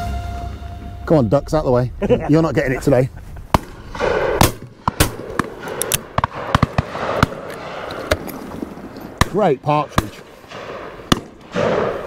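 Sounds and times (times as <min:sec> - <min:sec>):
shotgun shots: 0:03.5 - 0:12.0.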